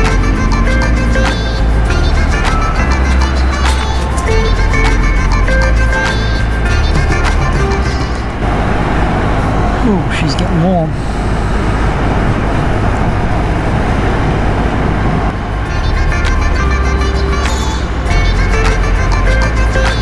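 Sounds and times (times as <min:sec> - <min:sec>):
background music: 0:00.0 - 0:10.4, 0:15.5 - 0:20.0
motorcycle engine and tyre rumble: 0:07.0 - 0:16.9
wind rush: 0:08.0 - 0:16.0.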